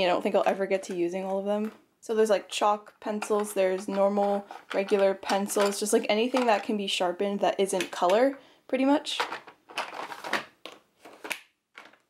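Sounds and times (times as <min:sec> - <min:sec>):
pens rattling in drawer: 0:03.1 - 0:06.8, 0:09.1 - 0:12.0
plastic drawers sliding: 0:09.2 - 0:12.0.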